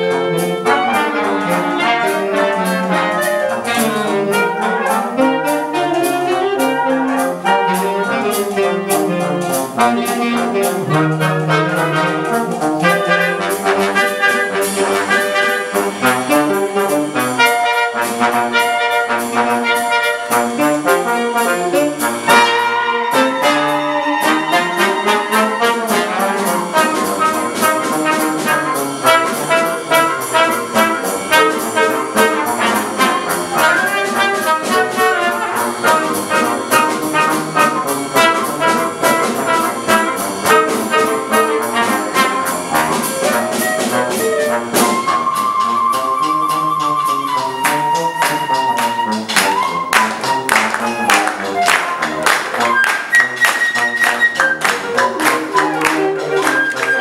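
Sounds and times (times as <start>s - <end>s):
wind ensemble playing jazz: 0.0s - 57.0s.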